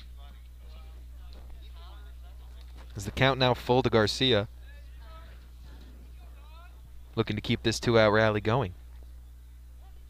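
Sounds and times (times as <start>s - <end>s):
distant voices calling out: 0.0s - 10.0s
steady low hum: 0.0s - 10.0s.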